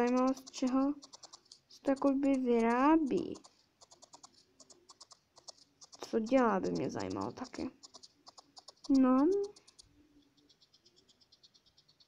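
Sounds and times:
felting needle jabbing wool: 0.0 - 12.0.

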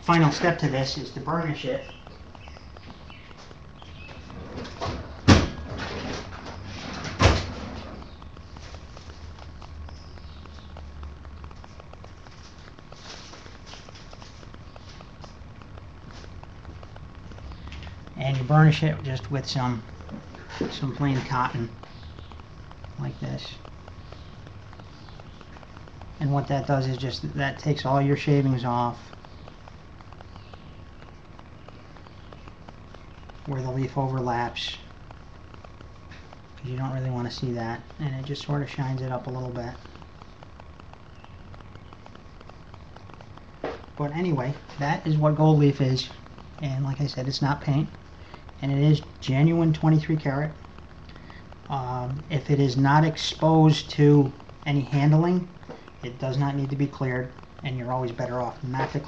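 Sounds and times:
faint rummaging ticks: 0.0 - 59.0
low steady hum: 0.0 - 59.0.

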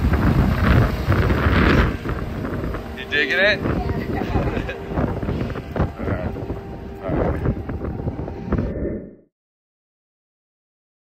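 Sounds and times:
wind buffeting microphone: 0.0 - 9.2.

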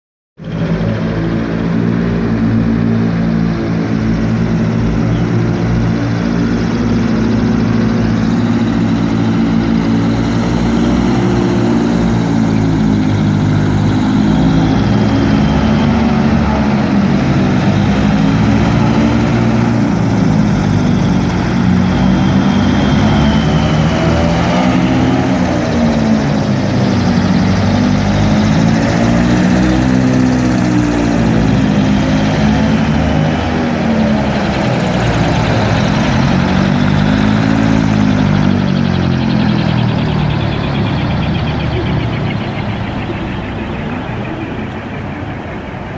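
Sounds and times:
hovercraft engines and propellers droning: 0.4 - 45.9.

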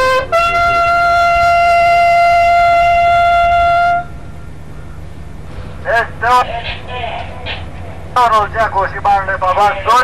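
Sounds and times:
loud horn blast: 0.0 - 4.6.

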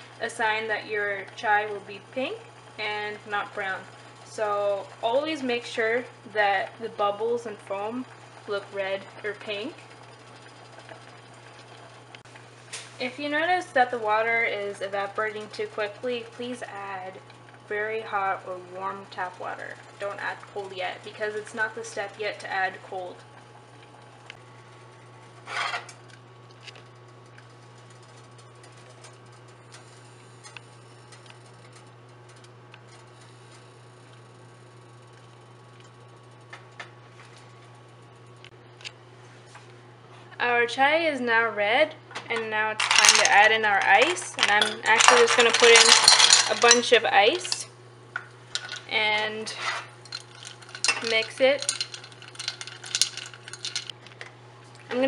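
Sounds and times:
tea simmering in a pan: 0.5 - 24.9, 50.0 - 54.0
ice and spoon clinking on metal pan: 42.8 - 47.6, 50.0 - 53.9.

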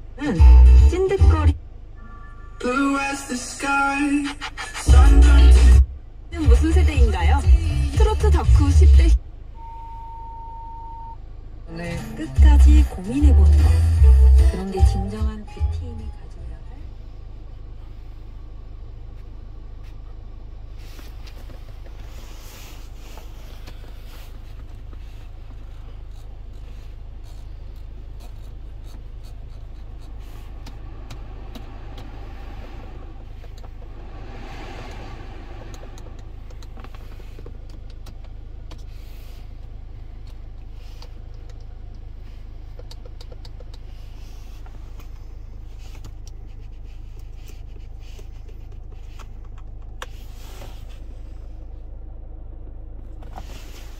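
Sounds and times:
car radio muting: 0.2 - 11.1, 11.7 - 16.4, 27.2 - 42.0
steady high tone: 0.3 - 4.2
rush of air: 30.4 - 37.4.

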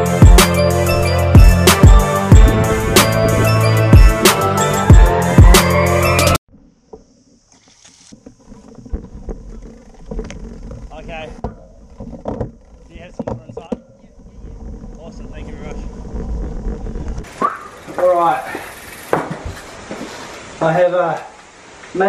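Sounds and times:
wind rumbling on microphone: 2.3 - 3.7, 8.2 - 20.6
steady high hiss: 14.9 - 22.0.

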